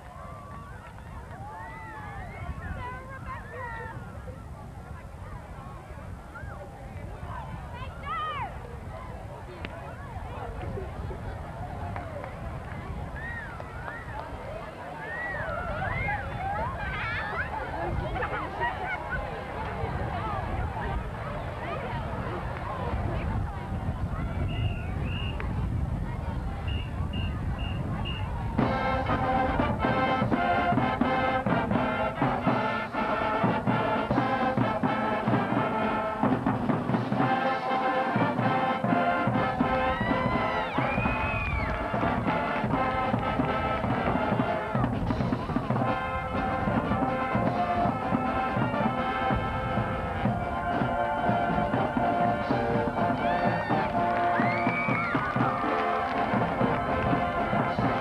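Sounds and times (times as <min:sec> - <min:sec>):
marching band playing brass piece: 0:26.7 - 0:58.0.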